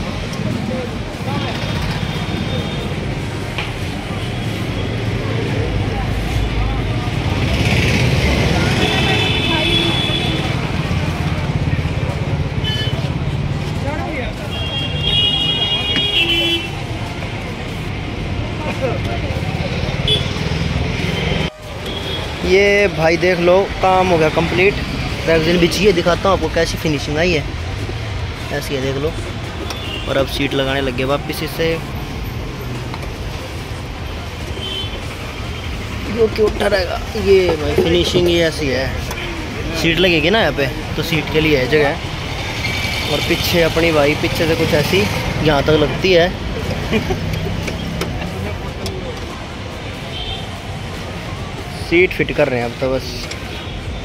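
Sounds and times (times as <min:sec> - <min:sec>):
road traffic: 0:00.0 - 0:54.0.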